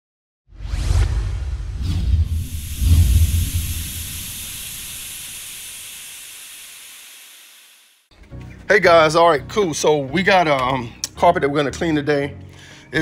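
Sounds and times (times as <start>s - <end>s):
deep rumbling whoosh: 0.5s - 5.2s
hiss: 2.2s - 8.1s.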